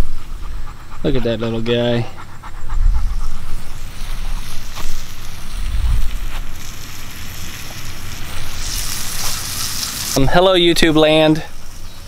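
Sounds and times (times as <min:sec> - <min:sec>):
wind buffeting microphone: 0:00.0 - 0:06.7.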